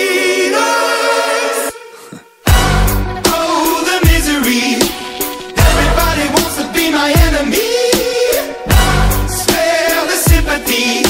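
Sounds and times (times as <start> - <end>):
pop song with choir-like vocals: 0.0 - 11.0.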